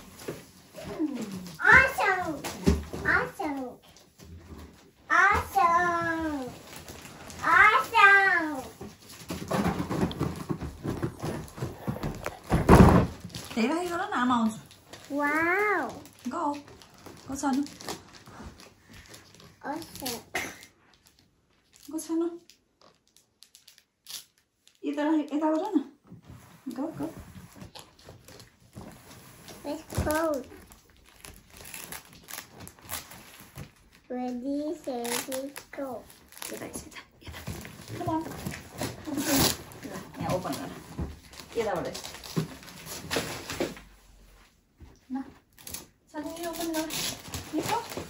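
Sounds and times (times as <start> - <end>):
wrapping paper rustling: 5.6 - 12.5, 13.1 - 25.6, 26.4 - 44.2, 45.4 - 48.0
wrapped box handled: 26.8 - 34.0, 34.8 - 43.8, 45.6 - 48.0.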